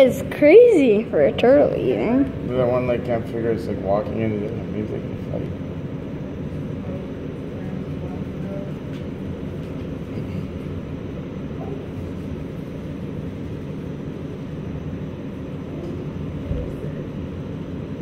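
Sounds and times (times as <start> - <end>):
low background rumble: 0.0 - 18.0.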